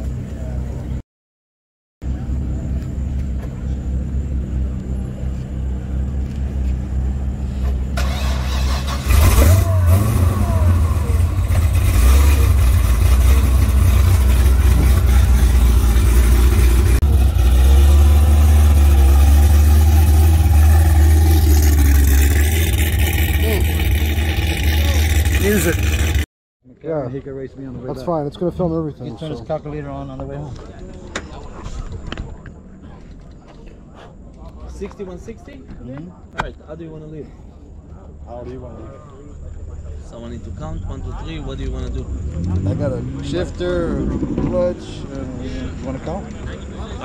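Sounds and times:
car engine starting: 0:03.4 - 0:26.3, 0:39.6 - 0:47.0
car engine idling loudly: 0:08.9 - 0:26.2.

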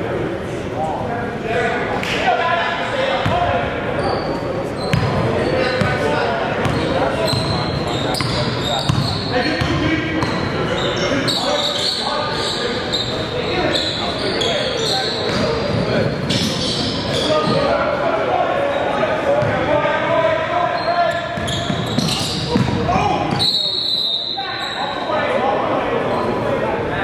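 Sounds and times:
sneakers squeaking: 0:03.1 - 0:17.8, 0:18.7 - 0:25.2
basketball bouncing: 0:21.4 - 0:22.8.

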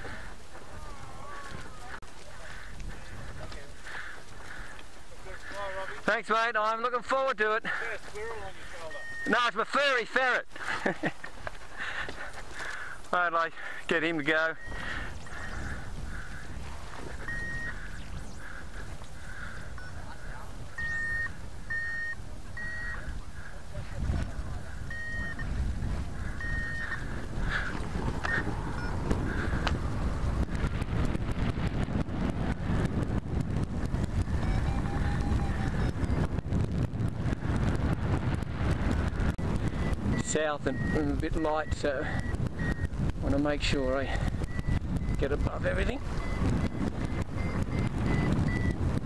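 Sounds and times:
wind rushing over microphone: 0:00.0 - 0:06.3, 0:10.8 - 0:49.0
variometer short high beeps: 0:08.8 - 0:09.6, 0:14.5 - 0:15.6, 0:17.1 - 0:18.4, 0:19.8 - 0:20.1, 0:20.7 - 0:23.1, 0:24.8 - 0:25.5, 0:26.3 - 0:27.1, 0:28.2 - 0:29.0, 0:34.0 - 0:36.4, 0:39.4 - 0:43.0, 0:44.4 - 0:48.9.

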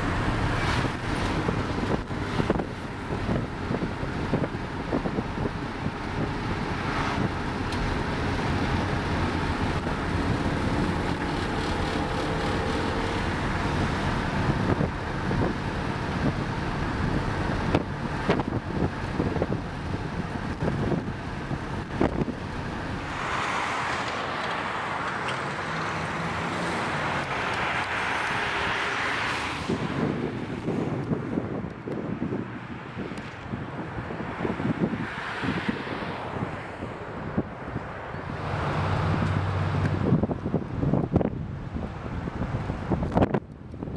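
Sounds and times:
car engine running: 0:00.0 - 0:23.2
road and wind noise: 0:00.0 - 0:43.9.

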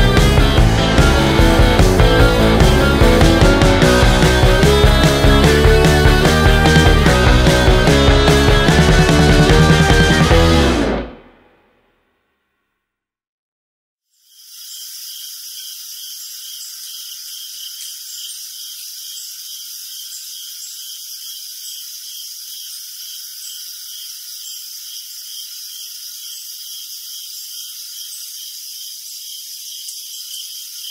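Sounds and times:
insects high-pitched trill: 0:14.1 - 0:30.9
short insect chirps: 0:14.1 - 0:30.9
pulsing insect call: 0:14.2 - 0:30.9.

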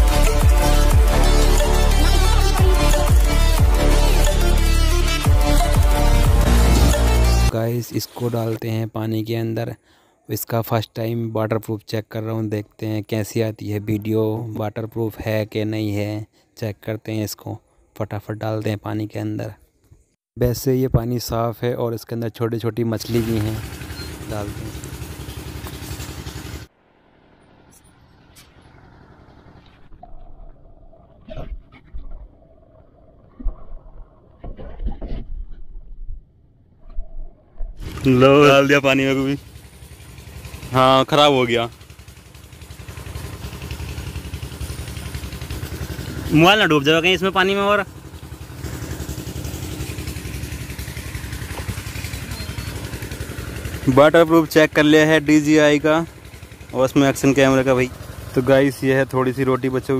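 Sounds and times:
engine running: 0:00.0 - 0:08.6, 0:23.0 - 0:31.0, 0:37.6 - 0:59.9.

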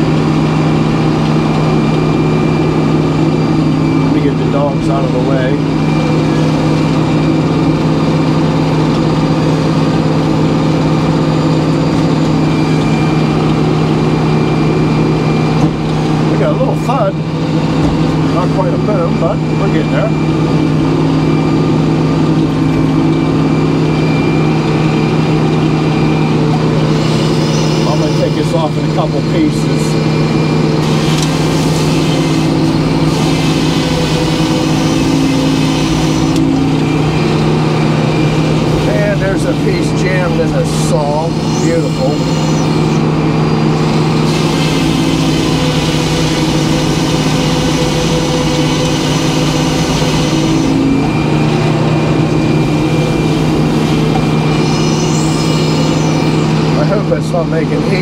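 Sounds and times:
circular saw blade cutting log: 0:30.8 - 0:36.5, 0:43.9 - 0:50.9.

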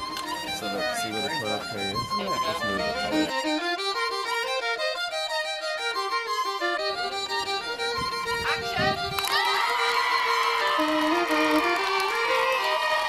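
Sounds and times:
fiddle playing a dance tune: 0:00.0 - 0:13.0
crowd shouting and cheering: 0:08.5 - 0:13.0.

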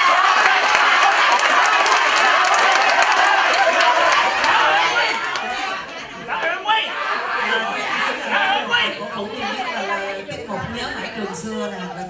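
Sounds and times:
people clapping: 0:00.0 - 0:06.7
audience cheering and shouting: 0:00.0 - 0:10.3
crowd chatter: 0:00.0 - 0:12.0.

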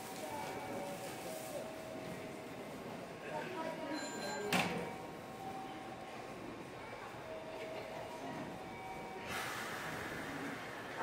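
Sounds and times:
air brakes hissing: 0:09.3 - 0:10.4.

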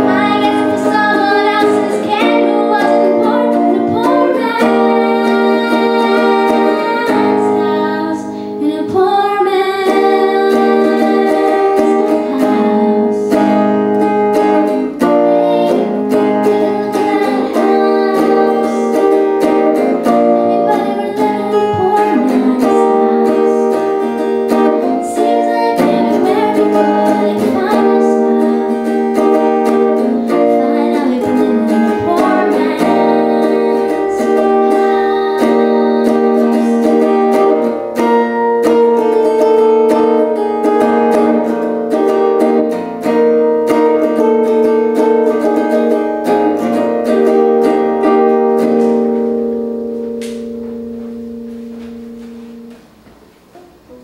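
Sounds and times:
guitar playing chords and notes: 0:00.0 - 0:54.0.

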